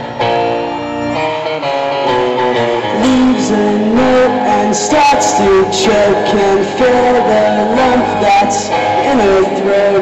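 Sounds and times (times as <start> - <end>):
pop-rock band playing: 0.0 - 10.0
strummed electric guitar: 0.0 - 10.0.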